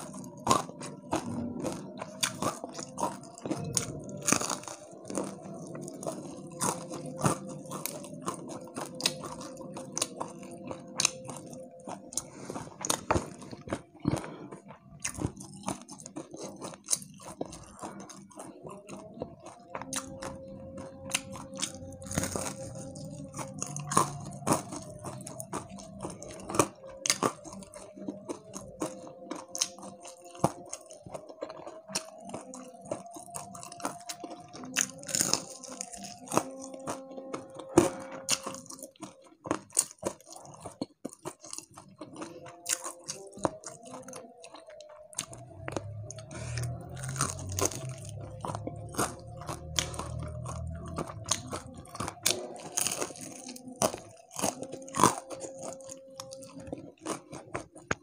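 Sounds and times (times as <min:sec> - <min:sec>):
crunchy chewing of fried food: 0:00.0 - 0:58.0.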